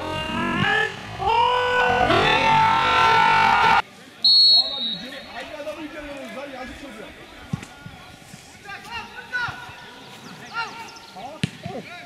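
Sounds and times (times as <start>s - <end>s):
crowd shouting and cheering: 0.0s - 3.8s.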